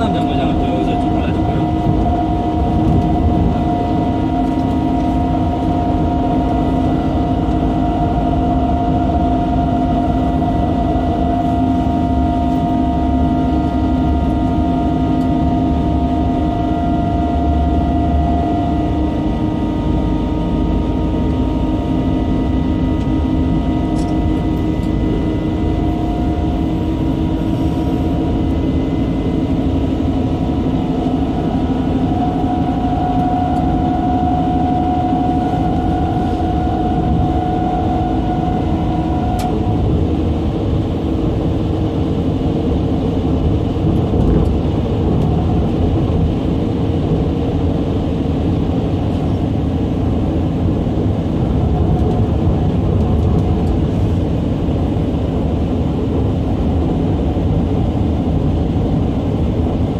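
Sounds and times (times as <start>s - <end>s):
steady whining tones: 0.0s - 59.9s
train rumble in tunnel: 0.0s - 59.9s.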